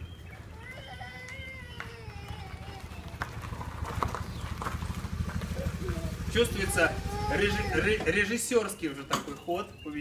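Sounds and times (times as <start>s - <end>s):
scooter engine running: 0.0s - 9.8s.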